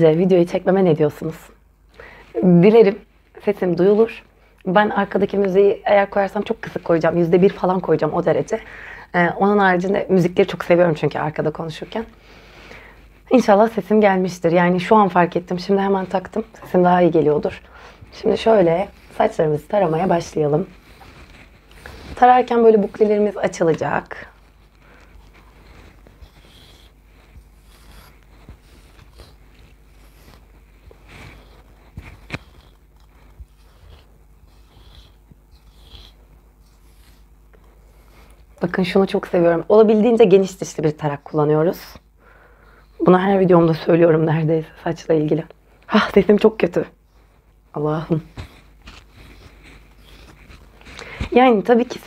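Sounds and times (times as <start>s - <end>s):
comb rustling through hair: 15.1s - 34.5s, 47.5s - 52.0s.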